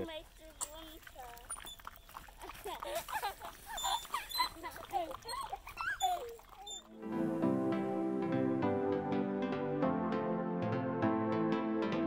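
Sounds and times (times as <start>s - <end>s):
child laughing: 2.4s - 6.4s
child chattering: 4.0s - 6.8s.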